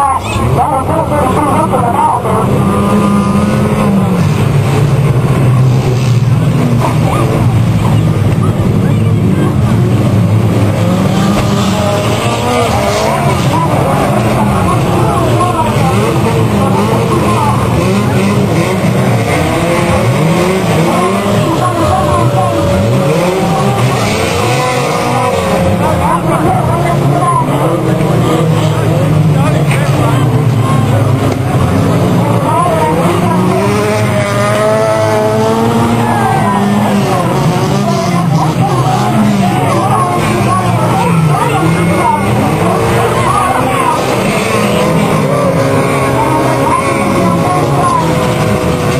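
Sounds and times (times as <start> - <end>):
racing car engines revving: 0.0 - 48.9.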